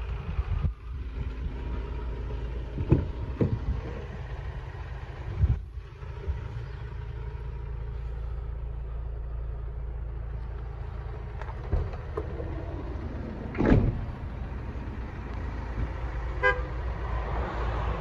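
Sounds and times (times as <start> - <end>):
vehicle engine idling: 0.0 - 18.0
loud clunk: 13.5 - 14.1.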